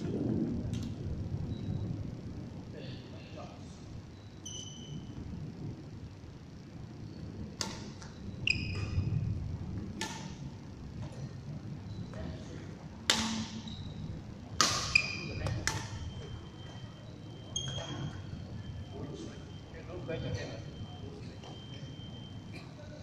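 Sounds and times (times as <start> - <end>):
racket hitting shuttlecock: 7.6 - 8.1, 10.0 - 10.4, 13.1 - 13.6, 14.6 - 16.0
shoes squeaking on floor: 13.5 - 14.0, 14.8 - 18.3.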